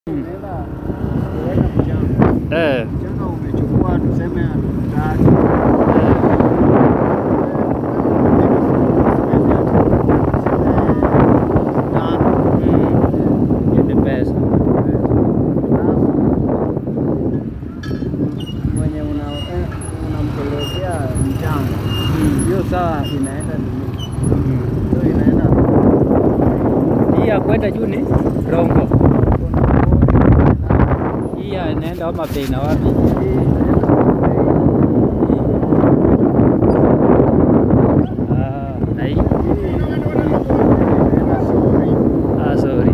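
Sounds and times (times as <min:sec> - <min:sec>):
road noise: 0:00.0 - 0:42.9
motorcycle running: 0:00.1 - 0:42.9
wind buffeting microphone: 0:00.1 - 0:42.9.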